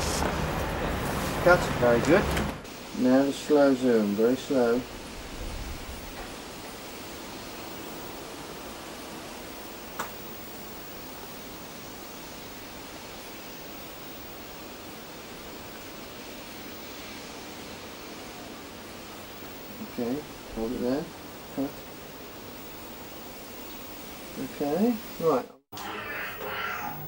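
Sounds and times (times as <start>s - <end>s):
steady recording hiss: 0.0s - 27.0s.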